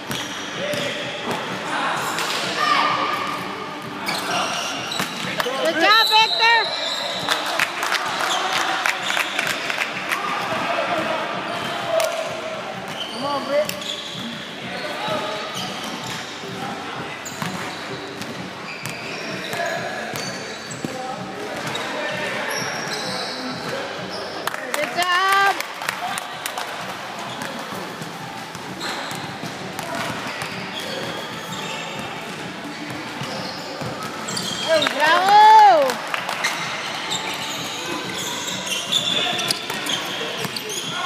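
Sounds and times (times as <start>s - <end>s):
crowd chatter: 0.0s - 41.0s
voices of players and spectators: 0.0s - 41.0s
basketball bouncing on court: 0.1s - 1.5s.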